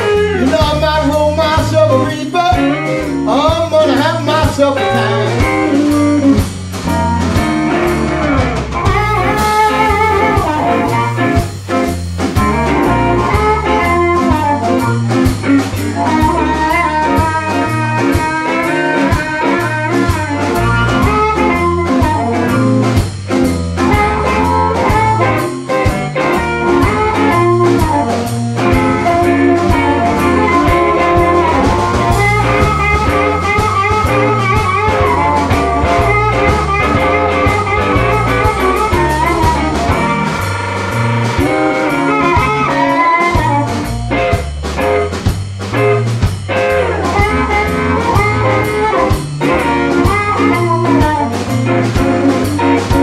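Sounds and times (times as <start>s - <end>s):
amplified blues harmonica: 0.0s - 53.0s
band guitar and drums: 0.0s - 53.0s.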